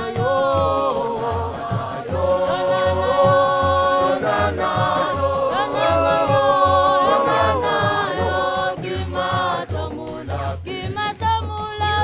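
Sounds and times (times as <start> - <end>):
choir singing in harmony: 0.0 - 11.2
steady low beat: 0.0 - 11.5.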